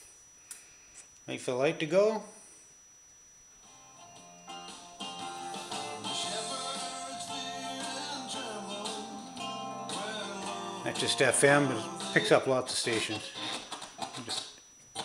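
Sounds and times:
radio music through receiver: 0:04.7 - 0:15.0.

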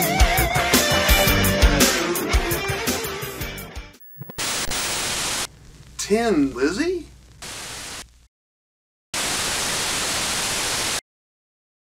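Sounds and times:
loud static hiss: 0:04.0 - 0:08.3, 0:09.2 - 0:11.0.

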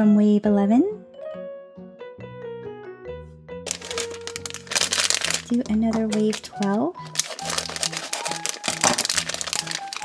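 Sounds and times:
background music: 0:00.0 - 0:10.0
plastic packet crinkling: 0:03.7 - 0:10.0
sharp crackle: 0:03.7 - 0:10.0.

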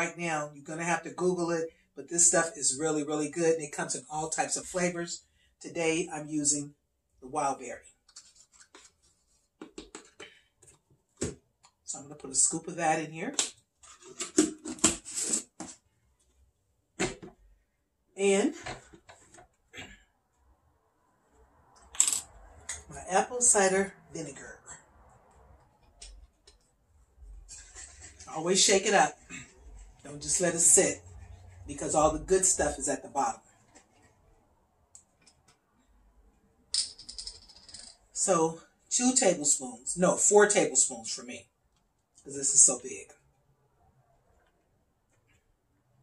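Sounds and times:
bottle clicking and rattling: 0:36.7 - 0:38.0.

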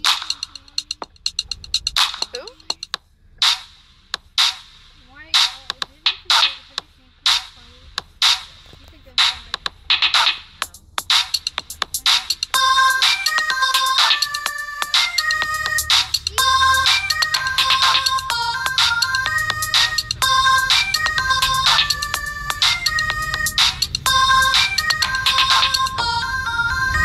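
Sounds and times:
drum hits: 0:00.0 - 0:26.2
bass line: 0:07.3 - 0:27.0
synth melody of short notes: 0:12.5 - 0:27.0.

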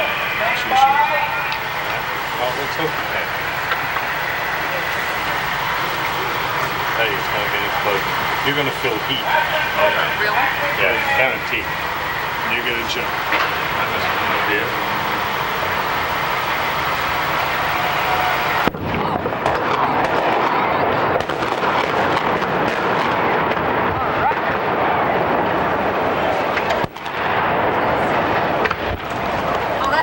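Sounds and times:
explosion blast: 0:00.0 - 0:29.8
fire burning with cracks and pops: 0:00.0 - 0:30.0.

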